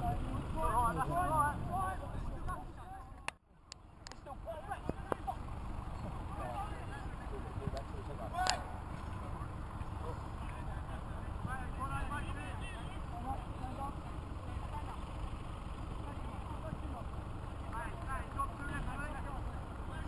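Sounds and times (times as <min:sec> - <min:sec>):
distant players shouting: 0:04.3 - 0:20.0.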